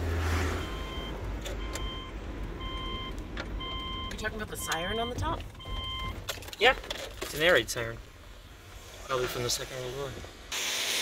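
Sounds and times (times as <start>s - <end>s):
low vehicle rumble: 0.0s - 9.5s
car warning chime beeping: 0.6s - 6.2s.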